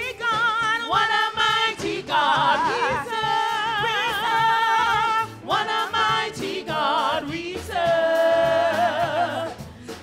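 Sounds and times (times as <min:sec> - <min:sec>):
women singing gospel with vibrato: 0:00.0 - 0:10.0.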